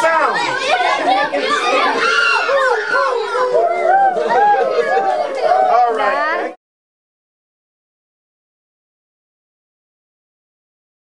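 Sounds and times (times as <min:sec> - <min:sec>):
children shouting: 0:00.0 - 0:06.6.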